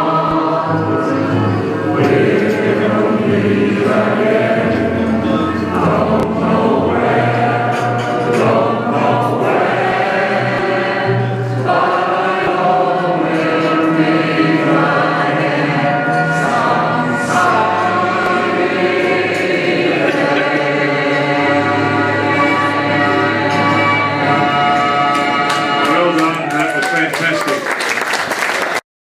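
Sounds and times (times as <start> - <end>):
choir singing held chords: 0.0 - 26.2.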